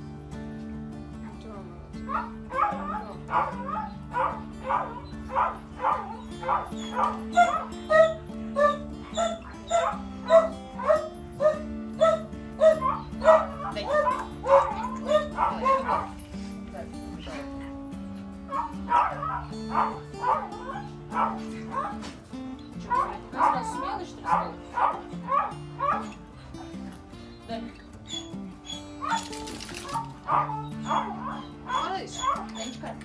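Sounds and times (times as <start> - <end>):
music with long held notes: 0.0 - 32.1
dog yipping: 2.1 - 16.1, 18.5 - 22.2, 22.9 - 26.2, 28.0 - 33.0.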